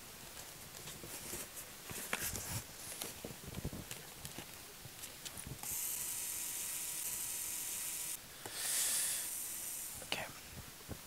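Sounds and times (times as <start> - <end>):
high hiss: 5.6 - 11.0.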